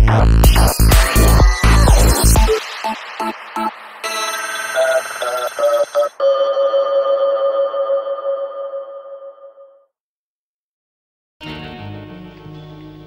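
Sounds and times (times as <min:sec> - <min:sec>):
quick synth pulses: 0:00.4 - 0:06.2
bell-like synthesizer tones: 0:01.1 - 0:09.8.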